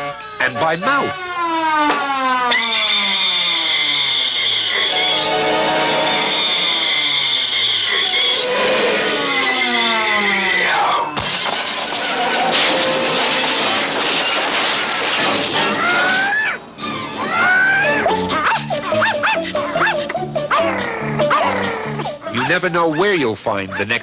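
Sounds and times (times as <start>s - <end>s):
falling whistle glides: 2.5s - 10.6s
held high tone: 4.9s - 7.6s
noisy clatter: 11.2s - 16.1s
loud crash: 11.2s - 16.3s.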